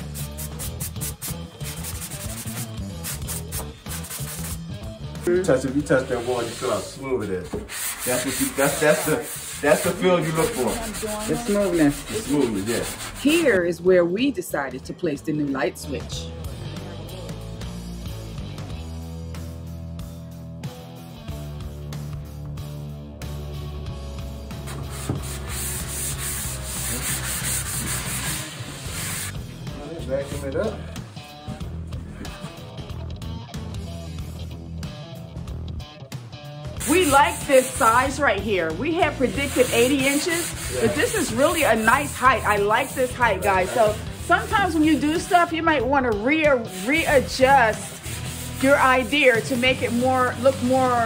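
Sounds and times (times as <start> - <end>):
sandpaper scraping on plaster wall: 0.0 - 4.6, 5.9 - 7.0, 7.6 - 13.6, 24.7 - 29.4, 36.8 - 38.3, 38.9 - 45.6, 46.6 - 51.0
background music: 0.0 - 51.0.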